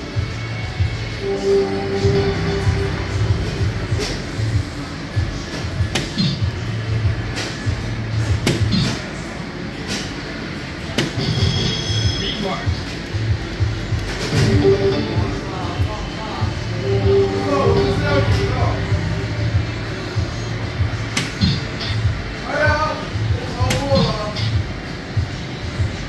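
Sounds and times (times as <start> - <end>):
music with bass beat: 0.1 - 8.4
electronic effect tone: 1.2 - 4.5, 14.3 - 20.0
darts striking board: 5.9 - 6.4, 8.4 - 9.0.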